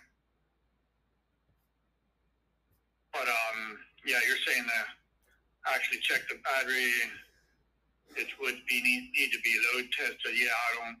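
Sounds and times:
man speaking: 3.2s - 7.3s, 8.1s - 11.0s.

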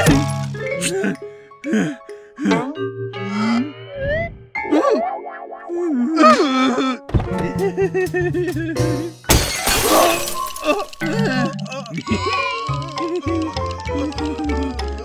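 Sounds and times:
playful cartoon music: 0.0s - 15.0s
glass shattering: 9.3s - 11.1s.

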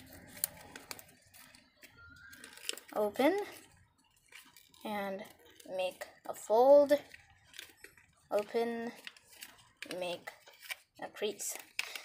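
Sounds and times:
crisp paper crackles: 0.0s - 6.3s, 6.9s - 12.0s
paper being folded and creased: 0.0s - 6.3s, 6.9s - 12.0s.

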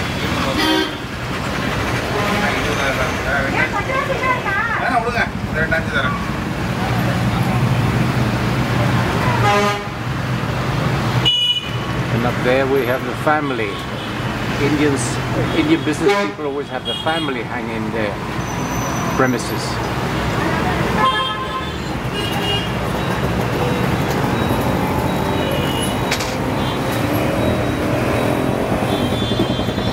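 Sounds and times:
road traffic hum: 0.0s - 29.9s
vehicle engines running: 0.0s - 29.9s
vehicle horn toot: 0.5s - 1.1s, 9.4s - 10.0s, 11.2s - 11.8s, 21.0s - 22.8s, 28.8s - 29.9s.

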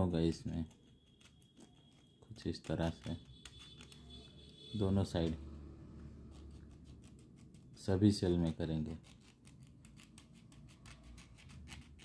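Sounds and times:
file scraping metal: 6.2s - 12.0s.

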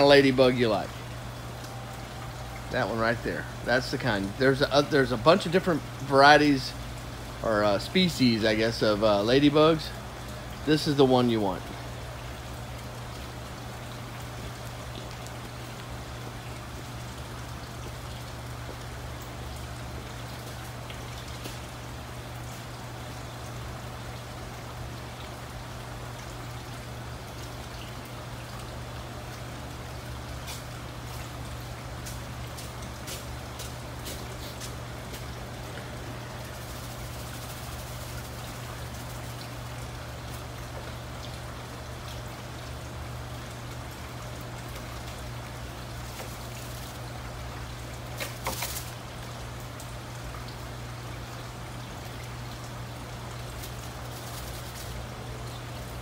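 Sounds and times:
pump humming: 0.0s - 56.0s
running water trickling: 0.0s - 56.0s.

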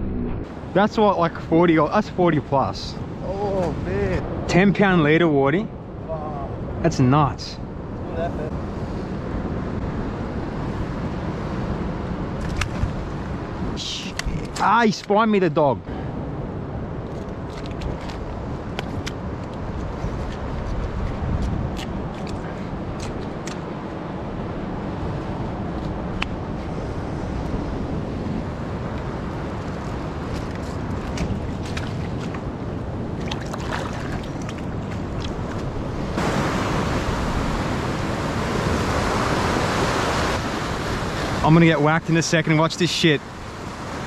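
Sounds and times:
ocean surf washing over rocks: 16.4s - 44.0s.

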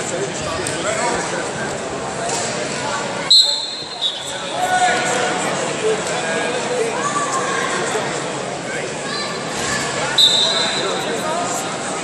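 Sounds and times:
crowd voices in a hall: 0.0s - 12.0s
referee's whistle: 3.3s - 4.4s, 10.2s - 11.0s.

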